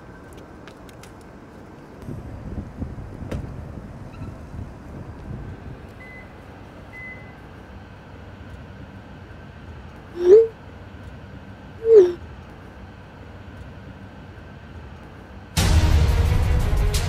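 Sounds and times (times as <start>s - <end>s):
high electronic beeps: 10.2s - 10.5s, 11.8s - 12.2s.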